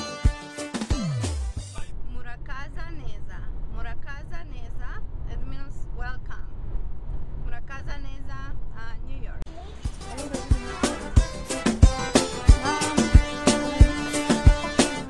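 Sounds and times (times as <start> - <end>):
music with falling pitch glide: 0.0 - 1.8, 9.8 - 15.0
woman talking: 1.8 - 6.6, 7.4 - 10.3.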